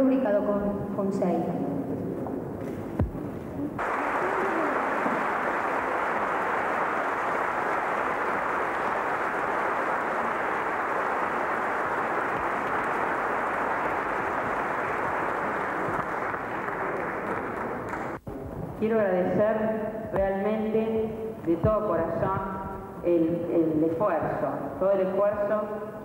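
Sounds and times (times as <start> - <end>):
audience applauding: 3.8 - 18.2.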